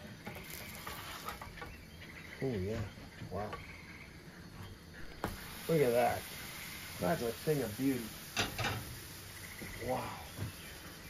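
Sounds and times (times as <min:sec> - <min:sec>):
steady background hiss: 0:00.0 - 0:11.0
spatula scraping frying pan: 0:00.4 - 0:01.6.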